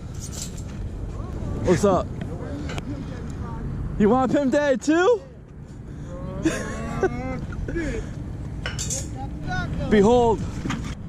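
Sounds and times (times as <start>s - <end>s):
men talking: 1.1s - 10.6s
man laughing: 6.2s - 8.2s.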